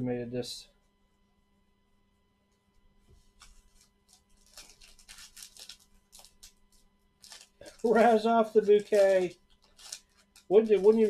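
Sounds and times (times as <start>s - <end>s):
foil wrapper tearing and crinkling: 3.4s - 11.0s.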